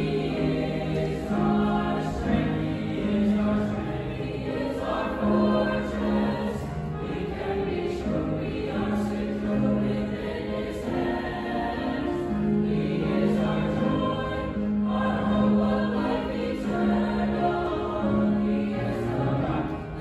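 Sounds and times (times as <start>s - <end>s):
choir singing sacred piece: 0.0s - 20.0s
piano accompaniment: 0.0s - 20.0s.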